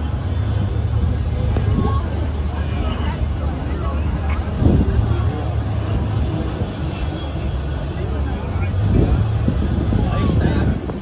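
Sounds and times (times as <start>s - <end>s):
people talking indistinctly: 0.0s - 11.0s
ship engine rumble: 0.0s - 11.0s.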